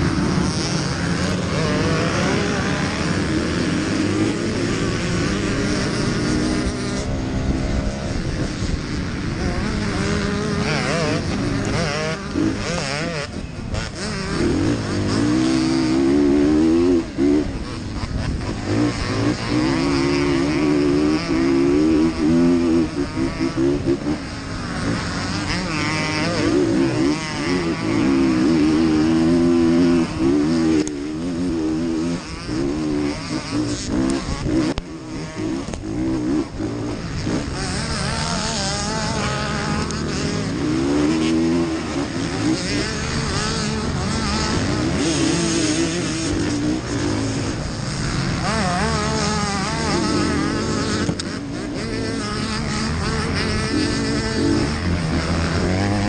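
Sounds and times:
motorcycle engine revving: 0:00.0 - 0:56.0.

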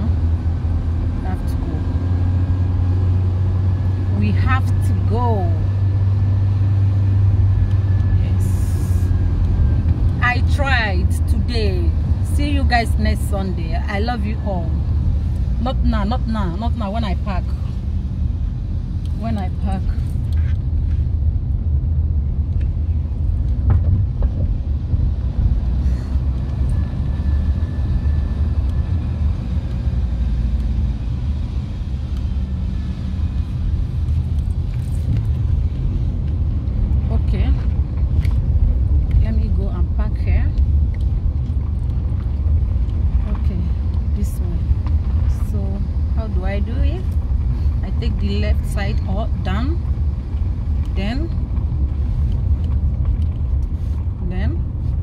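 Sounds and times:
car engine rumble: 0:00.0 - 0:55.0
road noise inside car: 0:00.0 - 0:55.0.

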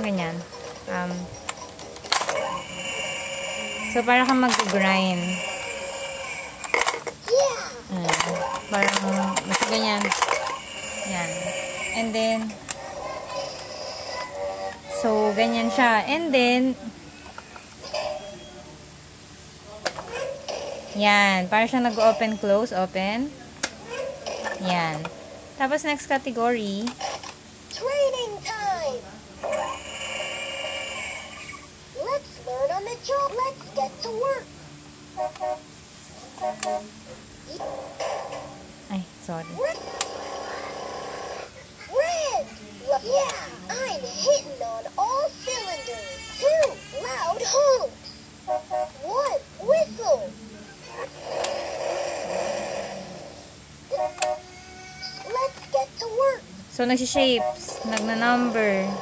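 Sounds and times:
toy whirring sound effect: 0:00.5 - 0:16.0, 0:26.8 - 0:34.4, 0:39.5 - 0:48.2, 0:50.8 - 0:59.0
high electronic toy tone: 0:02.4 - 0:06.8, 0:08.6 - 0:12.5.

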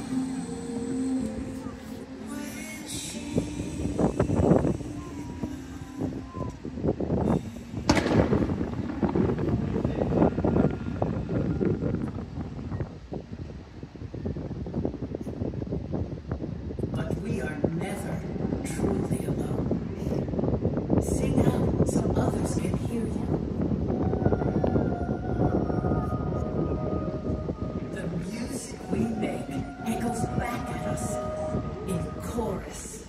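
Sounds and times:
crowd voices: 0:00.0 - 0:11.8, 0:17.5 - 0:33.0
fireworks booms and pops: 0:07.8 - 0:10.7
show music: 0:24.6 - 0:33.0.

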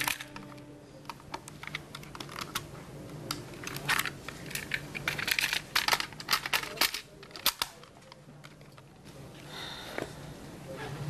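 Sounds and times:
quiet handling noise: 0:00.0 - 0:11.0.

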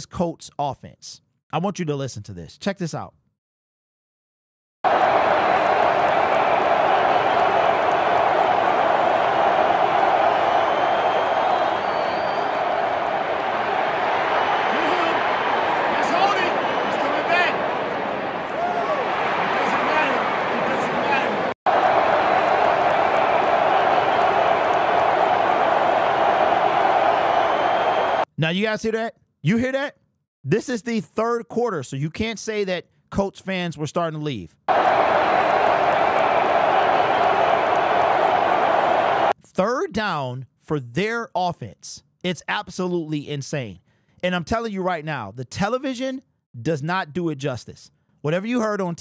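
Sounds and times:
stadium crowd cheering: 0:04.8 - 0:28.3, 0:34.7 - 0:39.4.

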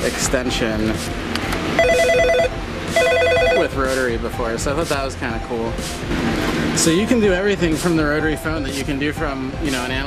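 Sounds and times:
phone ringer trilling: 0:01.8 - 0:03.7.

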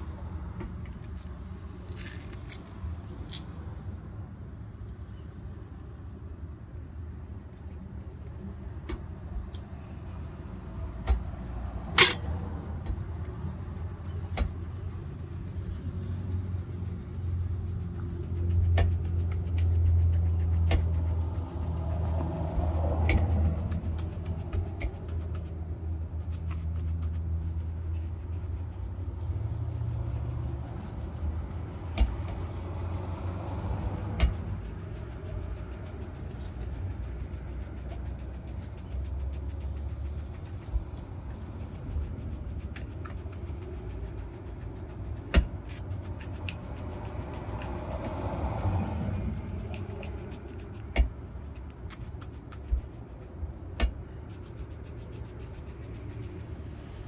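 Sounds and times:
street traffic rumbling: 0:00.0 - 0:57.0
bristle brush rubbing shoe: 0:01.9 - 0:02.7, 0:13.4 - 0:57.0.

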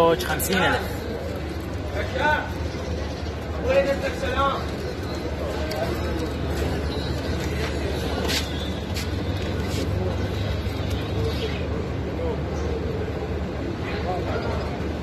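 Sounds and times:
low rumble of street traffic: 0:00.0 - 0:15.0
faint background voices: 0:00.5 - 0:15.0.

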